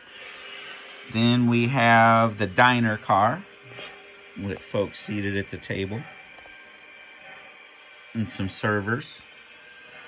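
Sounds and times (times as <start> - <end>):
faint hum: 0.0 - 10.0
model train rolling on track: 8.2 - 10.0.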